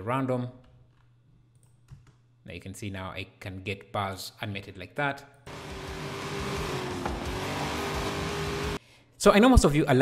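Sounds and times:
car engine drone: 5.5 - 8.8
road noise rush: 5.5 - 8.8.

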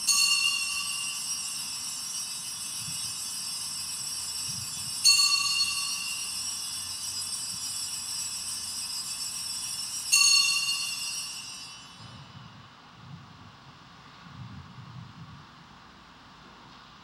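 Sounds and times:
altar bells ringing: 0.0 - 12.3.

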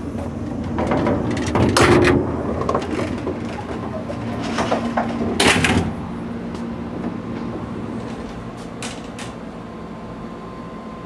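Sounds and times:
train car hum: 0.0 - 11.0.

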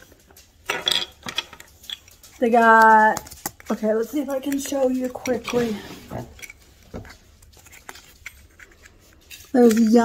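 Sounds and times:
soft handling clicks and rustles: 0.0 - 10.0.

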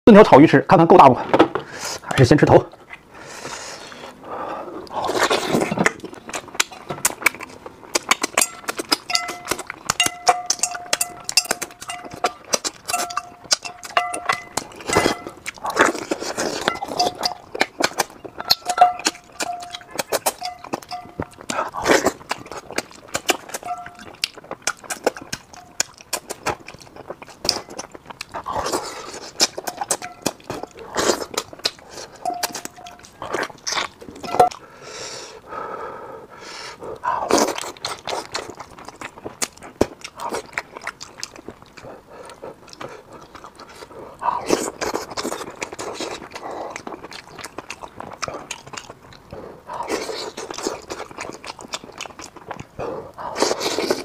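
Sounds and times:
person chewing and slurping: 3.2 - 35.4, 36.5 - 54.0.

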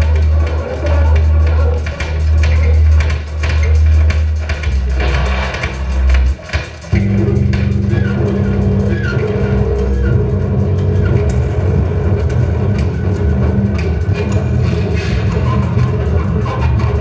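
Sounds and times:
low droning electronic tones: 6.9 - 17.0.

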